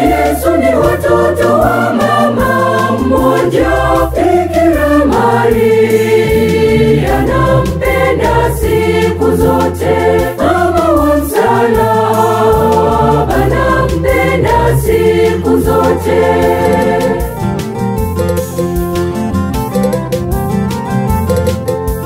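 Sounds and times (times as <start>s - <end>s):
choir singing gospel song: 0.0s - 17.6s
backing music with bass and beat: 0.0s - 22.0s.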